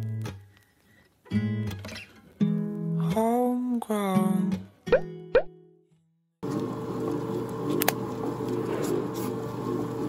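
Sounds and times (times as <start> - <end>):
rising bloop sound effects: 4.9 - 5.5
stand mixer churning clay: 6.4 - 10.0.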